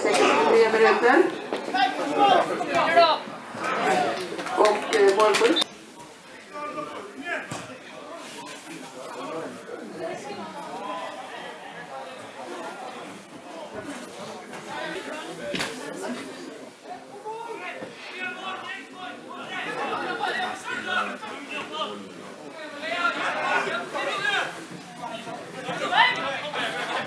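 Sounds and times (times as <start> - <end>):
indistinct chatter of people: 0.0 - 27.0
people talking: 0.0 - 27.0.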